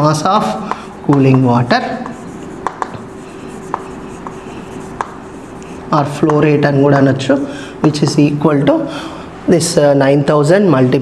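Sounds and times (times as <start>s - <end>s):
faint steady hum: 0.0s - 11.0s
chalk tapping on chalkboard: 0.6s - 6.6s.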